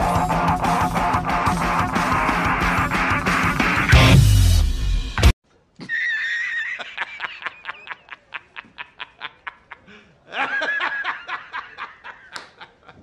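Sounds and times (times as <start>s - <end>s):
man laughing hard: 5.8s - 13.0s.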